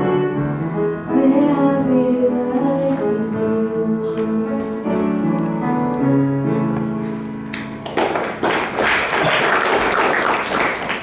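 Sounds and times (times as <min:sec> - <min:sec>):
piano chord: 0:00.0 - 0:08.2
audience applause: 0:07.8 - 0:11.0.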